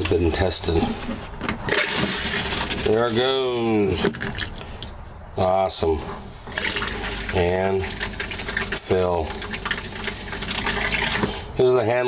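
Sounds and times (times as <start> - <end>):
water rushing into toilet bowl: 1.7 - 3.0, 6.5 - 11.3.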